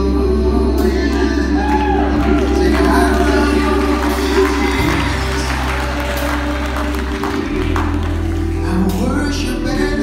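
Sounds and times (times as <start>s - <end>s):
held keyboard chords: 0.0s - 10.0s
steady bass: 0.0s - 10.0s.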